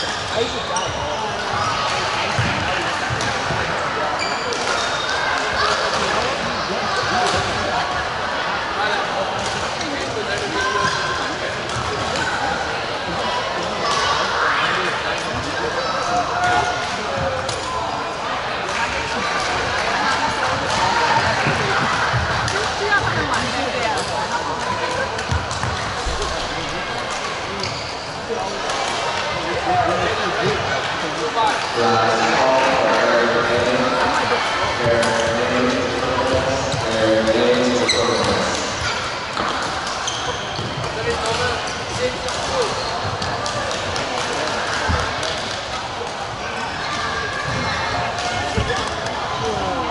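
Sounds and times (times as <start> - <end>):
voices talking and calling: 9.4 - 49.9.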